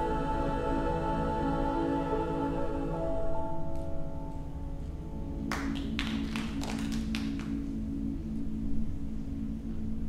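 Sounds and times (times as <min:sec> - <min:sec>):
choir singing held chord: 0:00.0 - 0:04.4
low steady hum: 0:00.0 - 0:10.0
scattered handclaps: 0:05.5 - 0:07.7.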